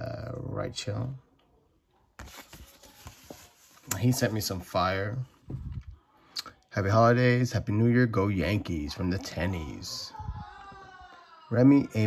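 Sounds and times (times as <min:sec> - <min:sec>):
paper card rustling: 0:02.2 - 0:04.7.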